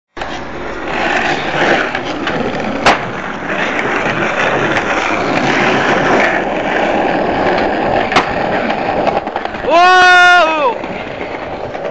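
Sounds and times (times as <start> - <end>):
skateboard wheels rolling on pavement: 0.1 - 11.9
skateboard clack: 0.2 - 11.9.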